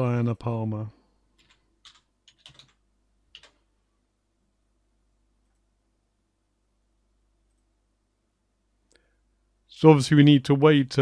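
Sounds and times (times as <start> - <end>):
man's voice: 9.8 - 11.0.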